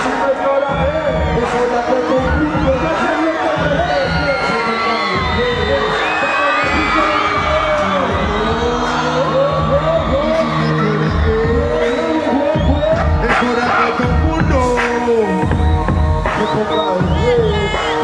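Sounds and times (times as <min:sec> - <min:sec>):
crowd voices: 0:00.0 - 0:18.0
loud hip hop music: 0:00.0 - 0:18.0.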